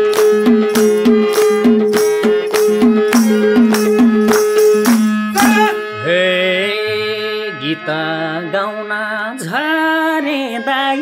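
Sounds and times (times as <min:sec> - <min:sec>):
man singing wavering held notes: 0:00.0 - 0:11.0.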